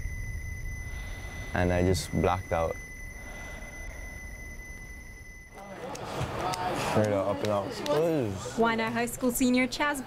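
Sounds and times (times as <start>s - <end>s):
low rumbling drone: 0.0s - 5.5s
thin high-pitched tone: 0.0s - 5.7s.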